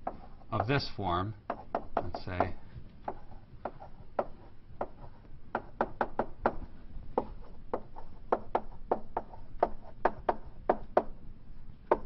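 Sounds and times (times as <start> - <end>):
chalk tapping on blackboard: 0.0 - 0.9, 1.5 - 11.1.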